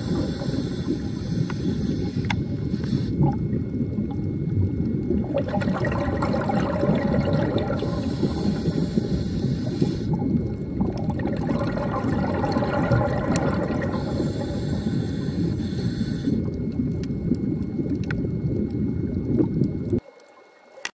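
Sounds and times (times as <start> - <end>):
hissing inhalation through regulator: 0.0 - 3.4, 7.5 - 10.4, 13.5 - 16.6
bubbling exhaled air underwater: 0.0 - 20.5.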